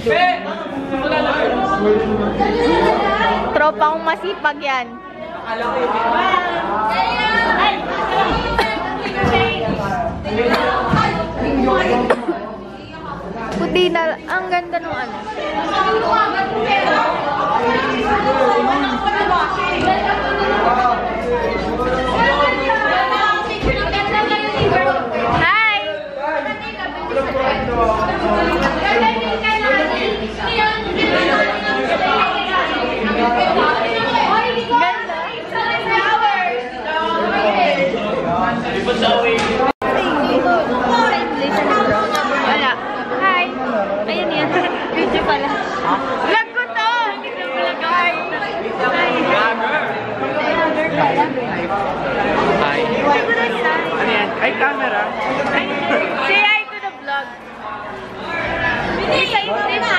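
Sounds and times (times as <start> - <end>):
voices chattering: 0.0 - 59.9.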